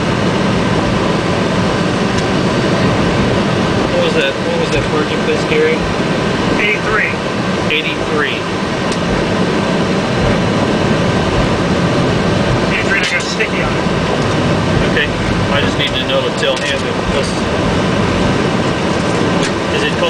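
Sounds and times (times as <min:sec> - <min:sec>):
cockpit air and equipment noise: 0:00.0 - 0:20.0
jet engines at taxi power: 0:00.0 - 0:20.0.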